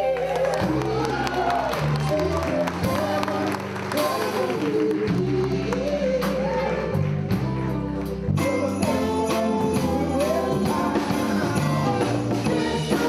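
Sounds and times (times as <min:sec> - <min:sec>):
bass line: 0:00.0 - 0:13.0
drums: 0:00.0 - 0:13.0
keyboard: 0:00.0 - 0:13.0
people singing: 0:00.0 - 0:13.0.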